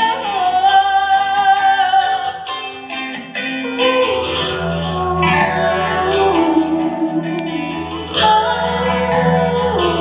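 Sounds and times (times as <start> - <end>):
woman singing into microphone: 0.0 - 2.8, 3.6 - 10.0.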